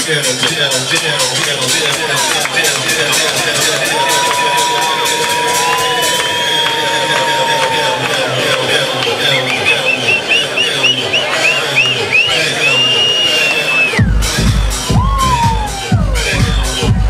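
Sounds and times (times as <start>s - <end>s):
crowd cheering and shouting: 0.0s - 17.0s
electronic dance music: 0.0s - 17.0s.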